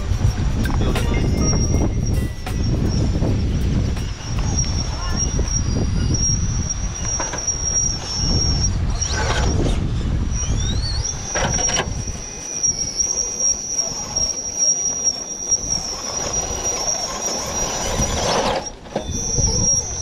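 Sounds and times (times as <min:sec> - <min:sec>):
low rumble: 0:00.0 - 0:11.3
electric motor and gears whining: 0:00.0 - 0:20.0.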